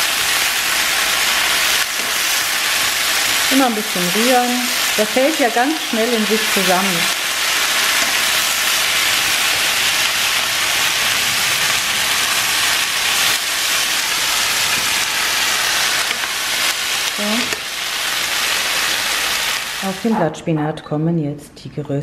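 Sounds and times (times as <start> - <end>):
food sizzling in a frying pan: 0.0 - 20.2.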